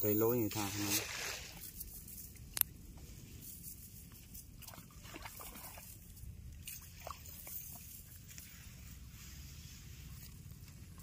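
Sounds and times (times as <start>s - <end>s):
cast net rustling on grass: 0.3s - 11.0s.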